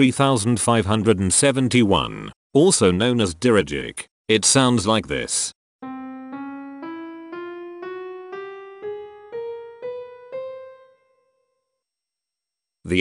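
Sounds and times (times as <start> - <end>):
piano playing a scale: 5.8 - 11.6.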